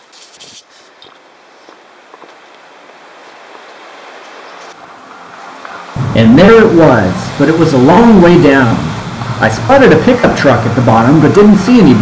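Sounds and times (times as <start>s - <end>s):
brush rustling: 0.0s - 2.4s
crunching footsteps: 0.0s - 4.8s
waterfall rushing: 2.7s - 12.0s.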